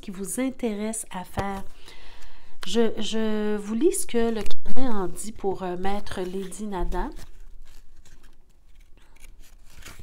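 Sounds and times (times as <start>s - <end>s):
paper pages rustling: 4.1s - 10.0s.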